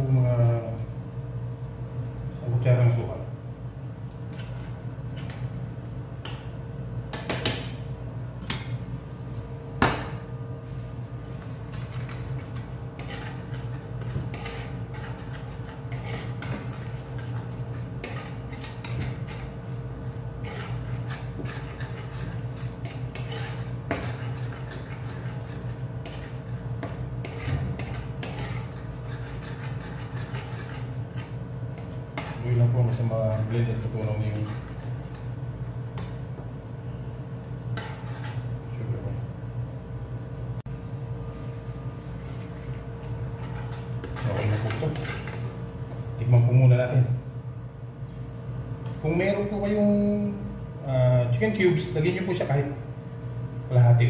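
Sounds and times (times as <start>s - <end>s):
steady low hum: 0.0s - 54.0s
spoon scraping a frying pan: 11.7s - 19.8s, 20.4s - 35.3s, 37.7s - 38.6s, 42.2s - 45.6s.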